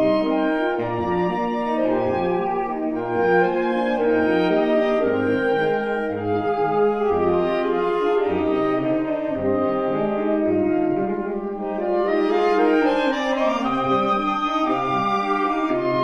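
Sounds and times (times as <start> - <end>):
saxophone quartet playing: 0.0 - 16.0.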